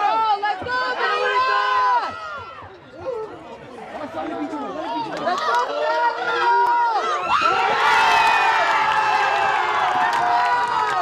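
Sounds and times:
crowd shouting: 0.0 - 3.2, 5.3 - 11.0
crowd cheering loudly: 5.0 - 11.0.

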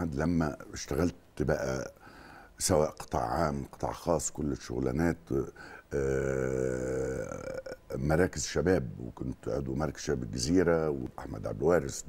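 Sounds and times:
man's drawn-out hesitation vowel: 5.9 - 8.0.

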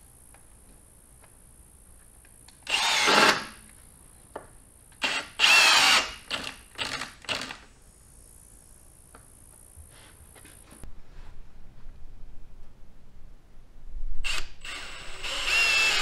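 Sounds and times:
cordless drill driving a screw: 2.7 - 3.5, 5.0 - 7.6, 14.2 - 16.0.

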